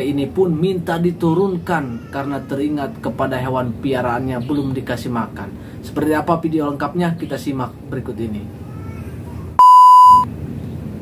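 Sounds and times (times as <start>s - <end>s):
electronic beep: 9.6s - 10.3s.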